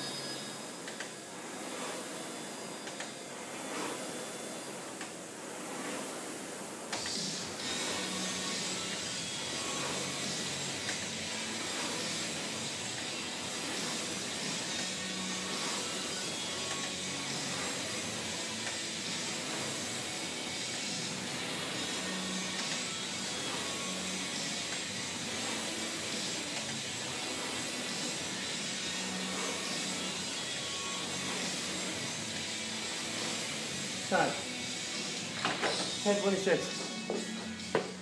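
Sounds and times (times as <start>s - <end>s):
rowing machine fan whooshing: 0.0s - 38.0s.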